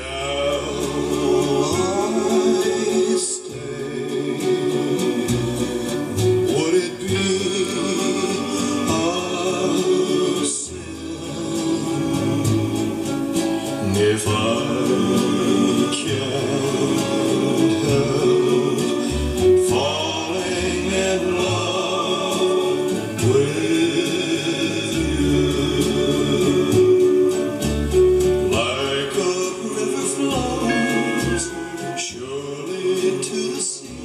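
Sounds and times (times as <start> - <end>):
song with singing over loudspeakers: 0.0 - 34.0.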